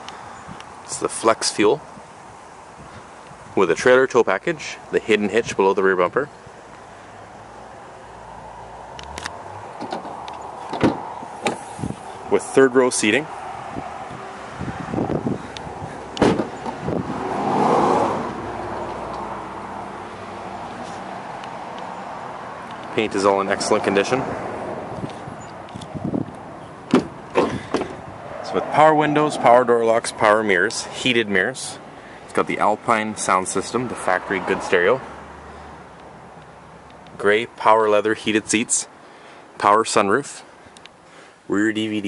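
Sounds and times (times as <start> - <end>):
background noise: 0.0 - 42.0
liftgate latch clunk: 9.1 - 11.6, 16.2 - 16.8, 26.9 - 28.0.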